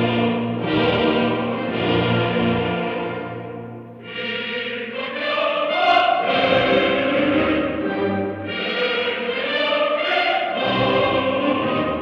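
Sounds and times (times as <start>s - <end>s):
full orchestra: 0.0s - 12.0s
opera chorus singing: 0.0s - 12.0s.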